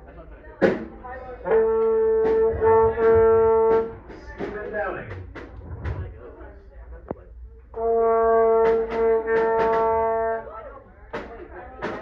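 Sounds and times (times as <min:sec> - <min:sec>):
brass instrument note: 0:01.4 - 0:04.1, 0:07.7 - 0:10.7
wavering brass tones: 0:01.4 - 0:04.1, 0:07.7 - 0:10.7
sharp knocks: 0:08.5 - 0:10.0.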